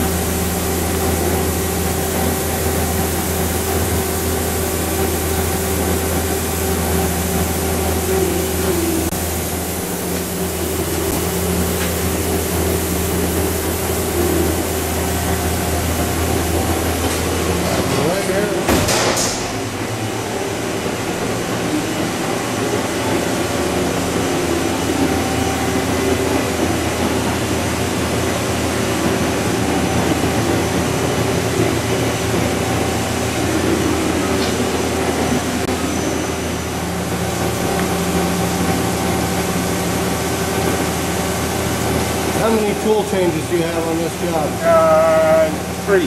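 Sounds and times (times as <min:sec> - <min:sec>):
machining center humming: 0:00.0 - 0:46.0.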